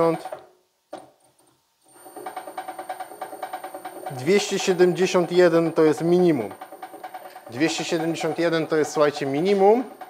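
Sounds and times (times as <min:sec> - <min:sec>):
drill press motor humming: 0:01.9 - 0:10.0.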